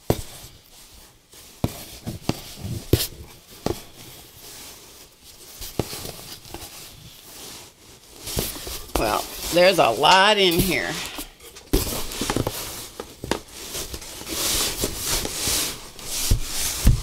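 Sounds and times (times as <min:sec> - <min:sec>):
fabric and cardboard rustling: 0:00.0 - 0:17.0.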